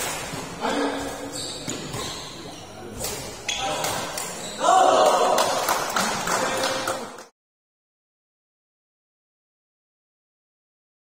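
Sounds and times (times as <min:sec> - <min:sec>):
rackets hitting shuttlecock: 0:00.0 - 0:02.2, 0:03.0 - 0:05.6
voices shouting: 0:04.4 - 0:05.5.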